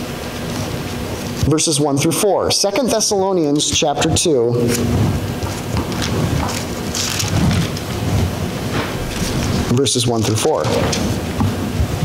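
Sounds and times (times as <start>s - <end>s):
pages rustling: 5.5s - 7.9s.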